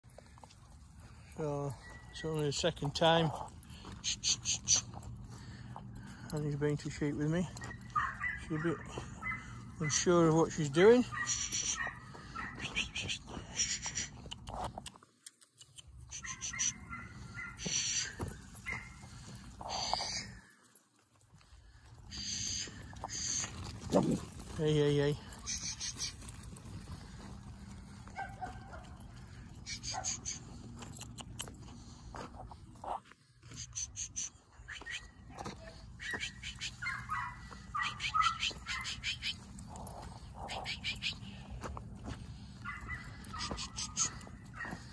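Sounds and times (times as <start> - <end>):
feet crunching on frozen ground: 10.9 - 14.2, 16.2 - 30.9, 31.7 - 44.9.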